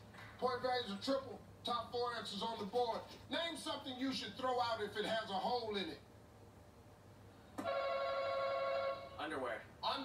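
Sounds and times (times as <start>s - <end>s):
electronic buzzer tone: 7.6s - 9.2s.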